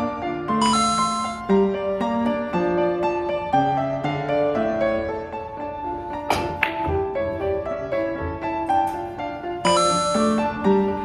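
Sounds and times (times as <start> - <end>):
piano music: 0.0 - 11.0.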